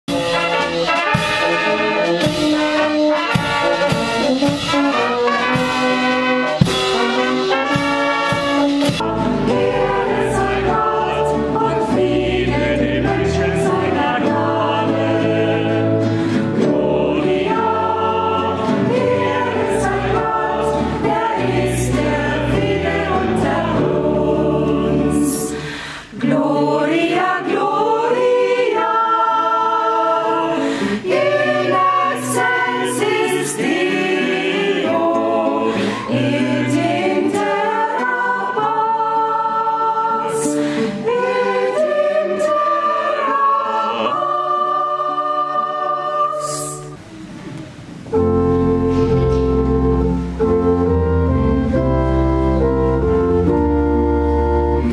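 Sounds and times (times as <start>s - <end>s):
choir singing a hymn: 0.1s - 54.9s
organ low notes: 46.6s - 54.9s.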